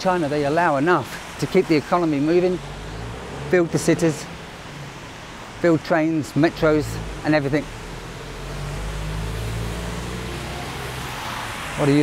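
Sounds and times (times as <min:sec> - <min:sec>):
tyres hissing on wet road: 0:00.0 - 0:12.0.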